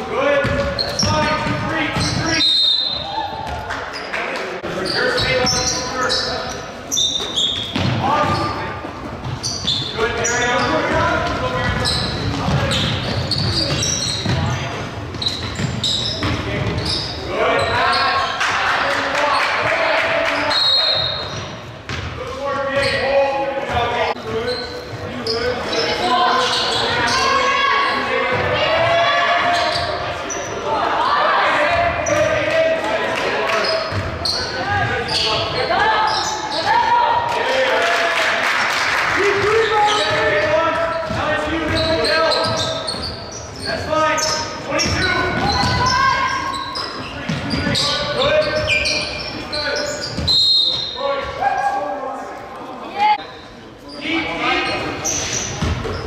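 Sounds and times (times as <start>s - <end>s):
basketball bouncing on hardwood: 0.4s - 2.1s.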